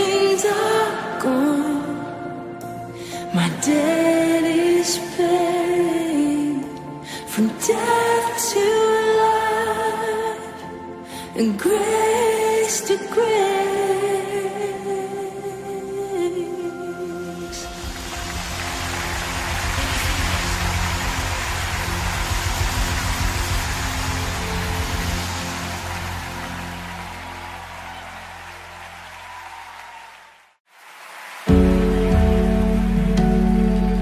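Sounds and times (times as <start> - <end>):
worship music: 0.0 - 29.6, 31.4 - 34.0
hissing wash over pulsing bass: 17.6 - 27.3.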